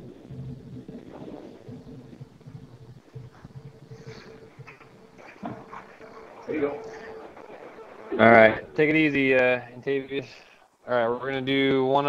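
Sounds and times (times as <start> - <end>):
low background sounds: 0.0 - 12.0
steady hum: 0.0 - 12.0.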